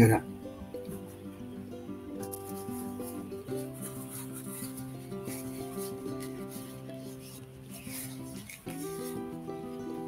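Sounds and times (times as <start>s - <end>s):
instrumental music of held chords: 0.0s - 10.0s
faint scratchy rubbing: 2.2s - 10.0s.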